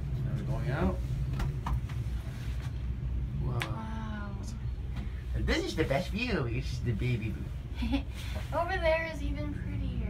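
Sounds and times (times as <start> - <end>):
cable car rumble: 0.0 - 10.0.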